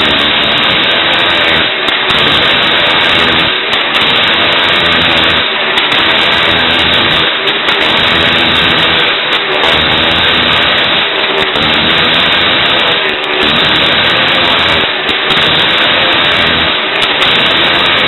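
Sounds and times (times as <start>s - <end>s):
motorcycle engine running hard: 0.0s - 18.0s.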